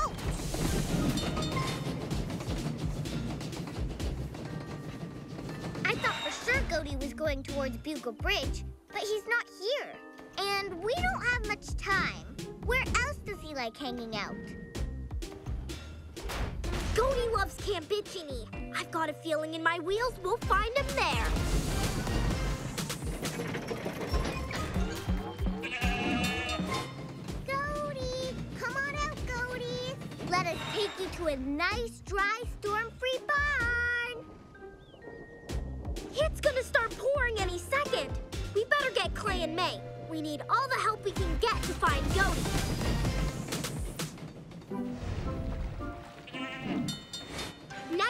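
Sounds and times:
cartoon background music: 0:00.0 - 0:48.0
goat bleating: 0:25.3 - 0:26.9, 0:46.3 - 0:46.9.

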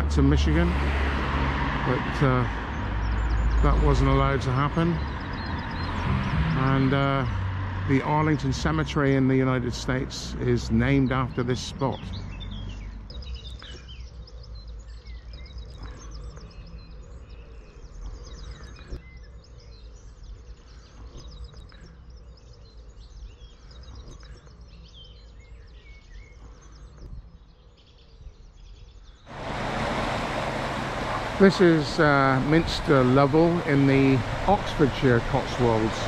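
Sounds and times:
small birds chirping: 0:02.1 - 0:36.0
low steady rumble: 0:29.3 - 0:36.0
river water rushing: 0:29.3 - 0:36.0.

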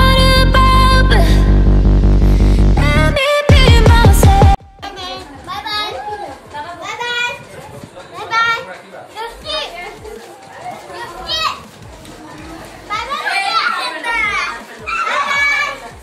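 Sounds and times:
young children chattering: 0:04.8 - 0:16.0
child squealing: 0:14.9 - 0:15.8.

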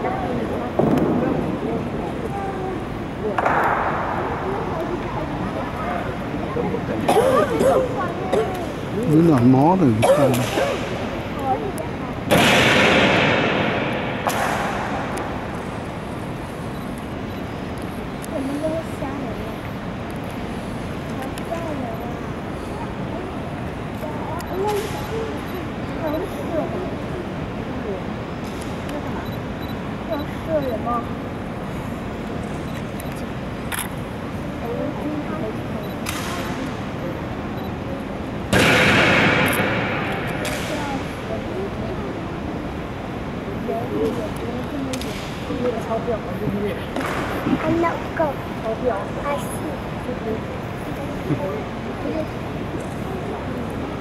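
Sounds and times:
murmur of voices: 0:00.0 - 0:54.0
sharp echoing crack: 0:03.4 - 0:04.5, 0:12.3 - 0:15.8, 0:38.5 - 0:41.2.

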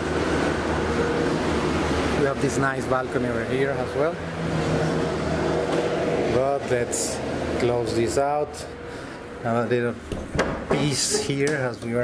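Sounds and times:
street machine engine drone: 0:00.0 - 0:12.0.

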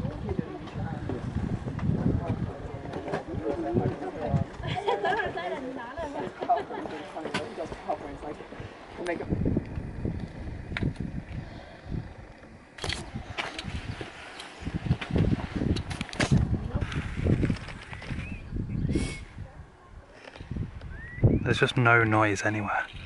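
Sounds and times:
gusty wind on microphone: 0:00.0 - 0:04.8, 0:08.6 - 0:21.8.

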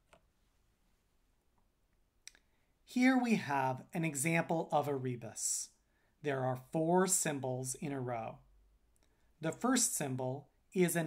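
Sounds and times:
speech: 0:02.9 - 0:08.5, 0:09.4 - 0:11.0.

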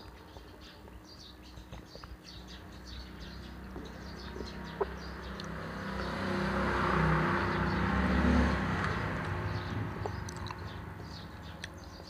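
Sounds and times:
passing vehicle engine: 0:02.8 - 0:12.0
eating and drinking clicks: 0:03.7 - 0:05.6, 0:10.0 - 0:12.0.

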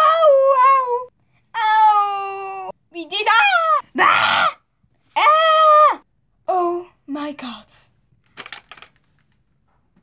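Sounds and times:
crackling rustling noise: 0:08.1 - 0:10.0.

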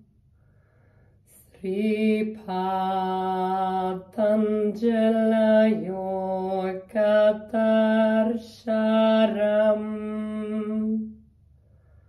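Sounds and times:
woman chanting: 0:01.3 - 0:11.2.

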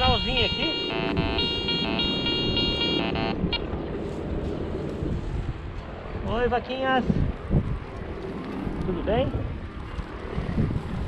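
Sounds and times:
metal detector pulsing buzzy tone: 0:00.0 - 0:03.7.

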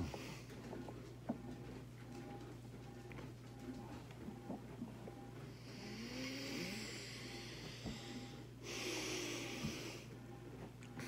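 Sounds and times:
man breathing heavily: 0:05.6 - 0:10.1.

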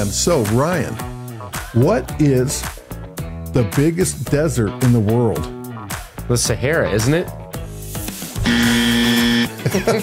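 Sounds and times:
wrong-answer buzzer: 0:08.4 - 0:09.5
speech or laughter: 0:09.6 - 0:10.0.

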